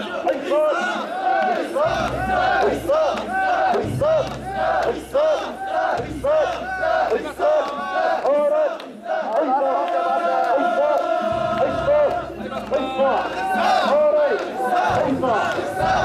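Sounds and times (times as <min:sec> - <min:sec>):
crowd of men chanting rhythmically: 0:00.0 - 0:16.0.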